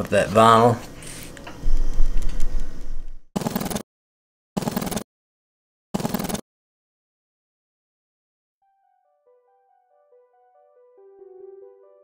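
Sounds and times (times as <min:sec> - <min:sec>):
low rumble: 0:01.6 - 0:03.3.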